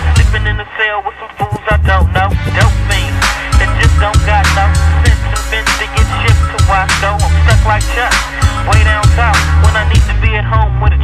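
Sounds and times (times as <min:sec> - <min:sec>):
hip hop beat: 0:00.0 - 0:11.0
rapping over telephone line: 0:00.0 - 0:11.0.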